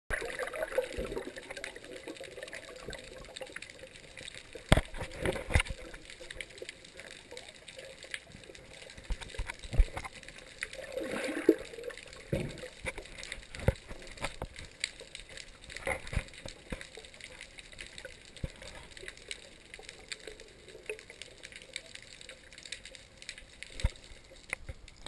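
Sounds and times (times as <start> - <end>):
gurgling bubbles: 0.1 - 14.6
sharp clicks and knocks: 4.6 - 6.0
water moving against camera case: 4.6 - 6.4, 8.9 - 11.6, 12.2 - 14.8, 15.6 - 17.0.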